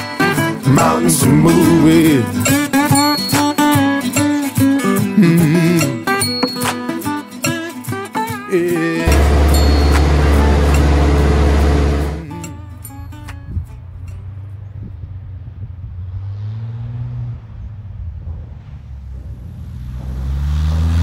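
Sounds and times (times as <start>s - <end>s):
song: 0.0s - 13.5s
light airplane engine powering up: 9.1s - 12.3s.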